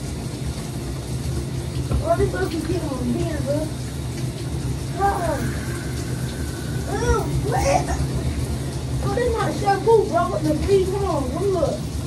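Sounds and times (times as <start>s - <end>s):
shower running: 0.0s - 12.0s.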